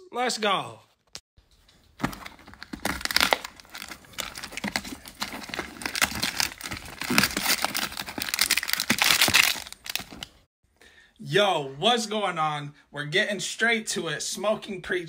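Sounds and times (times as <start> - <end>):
packaging crinkling and rustling: 1.4 - 10.5.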